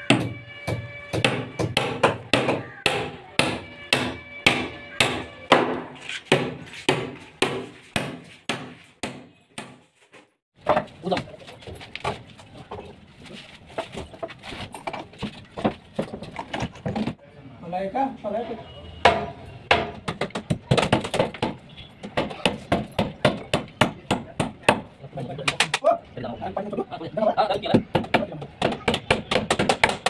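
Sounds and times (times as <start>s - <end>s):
hammer striking wooden plank: 0.0s - 9.8s, 19.0s - 24.9s, 27.7s - 30.0s.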